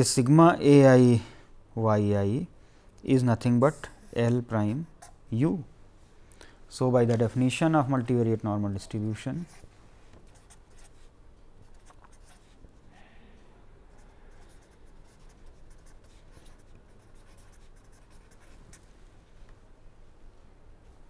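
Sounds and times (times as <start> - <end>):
pen scratching on paper: 10.3 - 12.6, 13.9 - 18.9.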